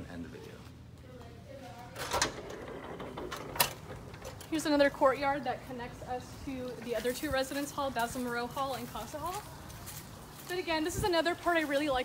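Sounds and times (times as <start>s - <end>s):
door being pushed open: 2.0s - 4.6s.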